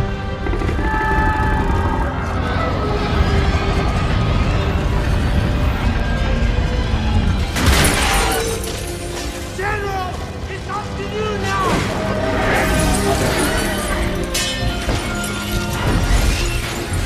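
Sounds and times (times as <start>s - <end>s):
dramatic film score: 0.0s - 17.0s
heavy low rumble: 0.2s - 7.6s
loud smashing crash: 7.4s - 9.6s.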